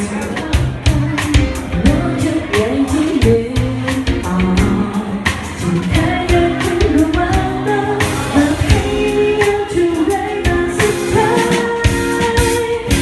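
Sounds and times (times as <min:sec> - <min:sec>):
drum kit: 0:00.0 - 0:13.0
guitar: 0:00.0 - 0:13.0
woman singing pop ballad: 0:00.0 - 0:13.0.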